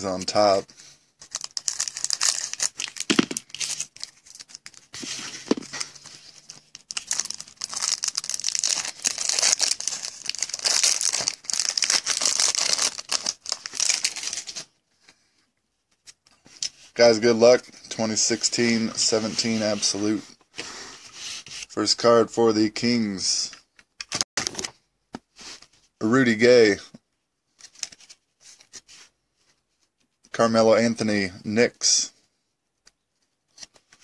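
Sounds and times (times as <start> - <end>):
plastic shrink-wrap tearing: 1.3 - 4.6, 6.9 - 14.5.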